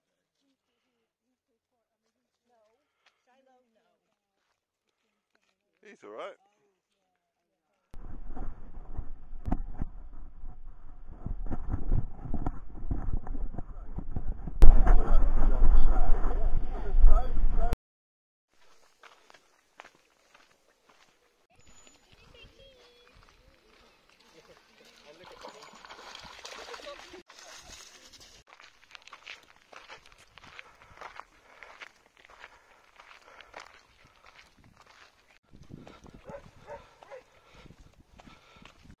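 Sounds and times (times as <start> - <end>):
scuffs on gravel path: 1.7 - 7.8, 18.5 - 39.0
low rumble: 8.0 - 17.8
dog splashing through water: 24.8 - 27.8.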